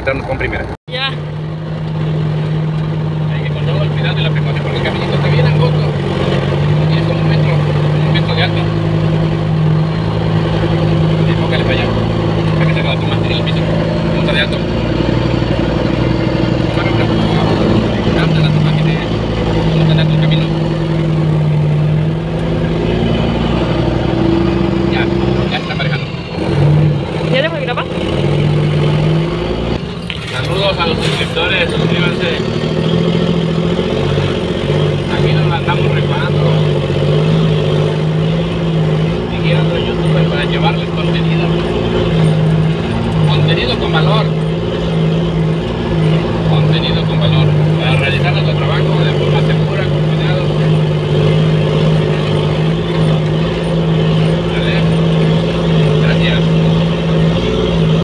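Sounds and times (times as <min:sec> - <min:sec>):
truck diesel engine drone: 0:00.0 - 0:58.0.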